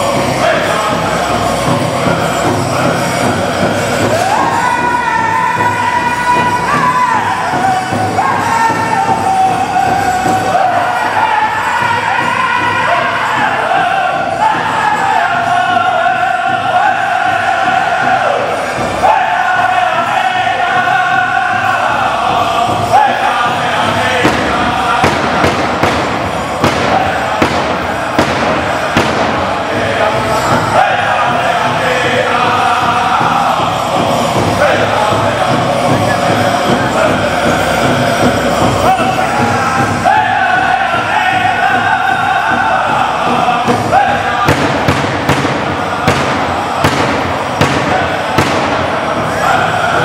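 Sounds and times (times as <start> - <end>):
group singing: 0.0 - 50.0
large drum steady beat: 0.0 - 50.0.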